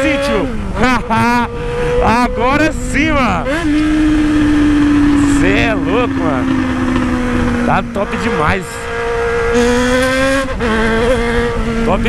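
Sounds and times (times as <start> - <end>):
loud motorcycle engine revving: 0.0 - 12.0.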